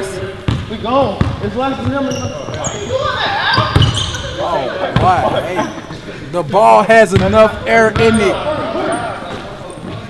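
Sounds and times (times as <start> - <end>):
players' voices: 0.0 - 10.0
basketball bouncing on court floor: 0.5 - 4.2, 7.1 - 8.4.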